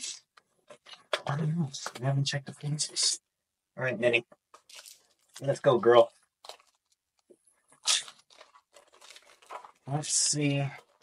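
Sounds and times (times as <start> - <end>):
wrapper and cards crinkling: 4.5 - 11.0
foil pack ripping: 7.8 - 11.0.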